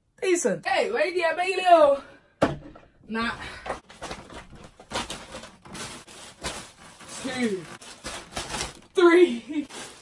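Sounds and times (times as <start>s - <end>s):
shopping bags rustling: 3.8s - 10.0s.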